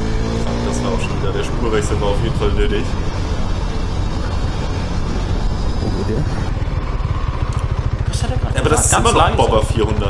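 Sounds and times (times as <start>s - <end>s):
wind rushing over microphone: 0.0s - 8.1s
motorcycle engine running: 0.0s - 10.0s.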